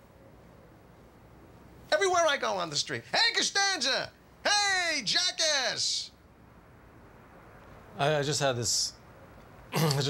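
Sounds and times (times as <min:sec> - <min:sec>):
faint steady hiss: 0:00.0 - 0:10.0
man speaking: 0:01.9 - 0:06.2.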